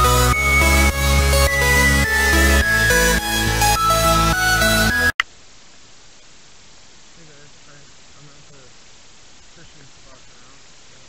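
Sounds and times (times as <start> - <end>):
electronic music: 0.0 - 5.2.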